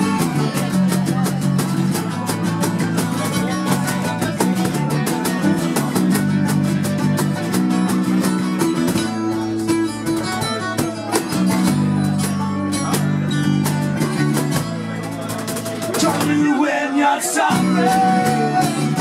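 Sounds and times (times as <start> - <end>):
bass guitar line: 0.0 - 19.0
cajon beat: 0.0 - 19.0
strummed acoustic guitars: 0.0 - 19.0.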